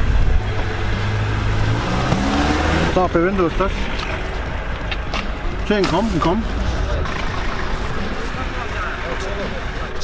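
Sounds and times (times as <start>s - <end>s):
faint voices talking: 5.4s - 10.0s.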